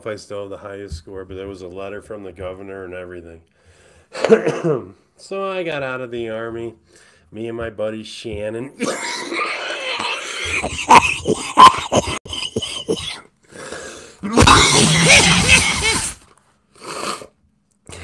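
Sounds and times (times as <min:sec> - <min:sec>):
man coughing: 0:04.2 - 0:05.0, 0:08.8 - 0:13.2, 0:14.2 - 0:16.2.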